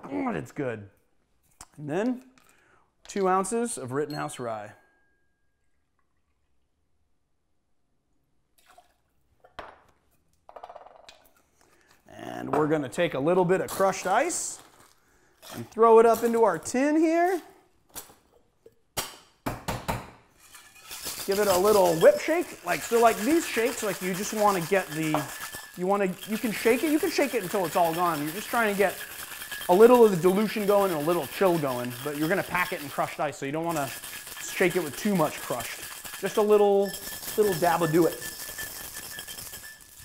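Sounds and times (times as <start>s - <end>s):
cocktail shaker tins knocking: 20.5s - 40.0s.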